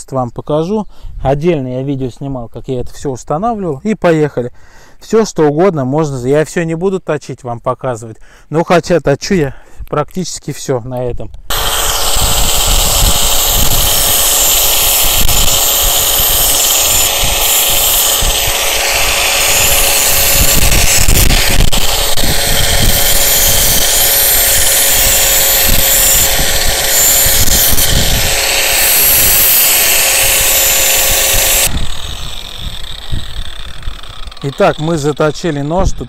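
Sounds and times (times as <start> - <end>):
angle grinder whining: 11.5 - 36.0
knife blade grinding on wheel: 11.5 - 36.0.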